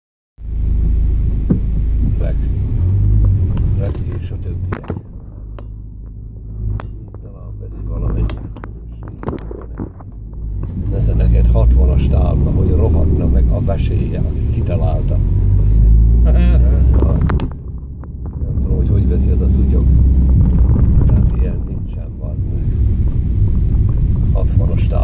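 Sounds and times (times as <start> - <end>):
car driving on rough dirt road: 0.4 - 25.0
knocks and rattles: 3.2 - 10.8.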